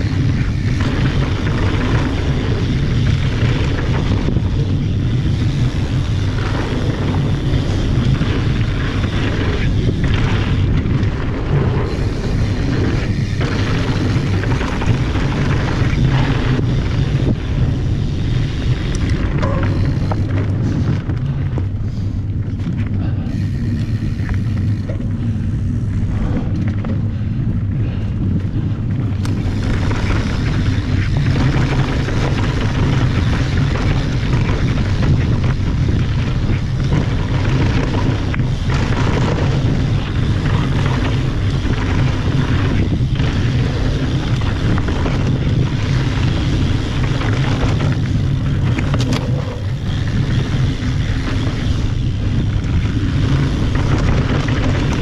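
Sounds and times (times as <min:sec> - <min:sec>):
bike rattling: 0:00.0 - 0:55.0
bike tyres rolling over dirt: 0:00.0 - 0:55.0
wind rushing over microphone: 0:00.0 - 0:55.0.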